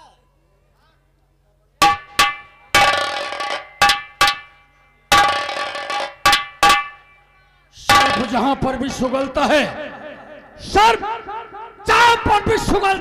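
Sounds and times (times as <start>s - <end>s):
metallic percussion hits: 1.8s - 12.8s.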